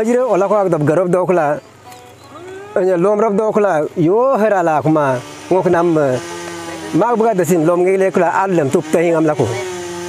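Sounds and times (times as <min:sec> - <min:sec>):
man speaking: 0:00.0 - 0:01.6, 0:02.7 - 0:09.7
man holding drawn-out vowel: 0:02.3 - 0:03.4.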